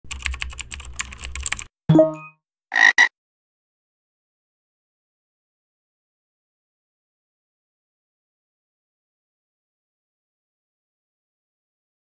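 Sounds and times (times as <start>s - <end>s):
computer keyboard typing: 0.1s - 1.7s
frog croak: 2.7s - 3.1s.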